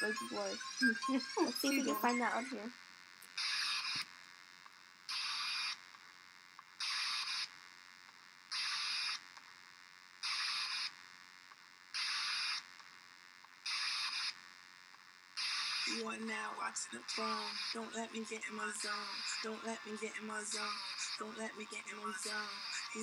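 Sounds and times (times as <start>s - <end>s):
quiet room noise: 0.0s - 23.0s
short bursts of hiss: 5.1s - 5.8s, 6.8s - 7.5s, 8.5s - 9.2s, 10.2s - 11.0s, 11.9s - 12.7s, 13.6s - 14.4s, 15.4s - 15.9s, 17.1s - 17.9s, 18.7s - 19.6s, 20.4s - 21.3s, 22.0s - 23.0s.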